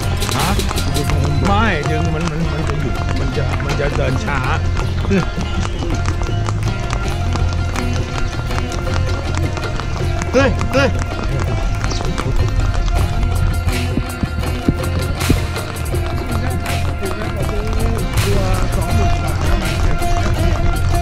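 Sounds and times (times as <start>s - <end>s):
background music: 0.0s - 21.0s
pony hooves clip-clopping: 0.0s - 21.0s.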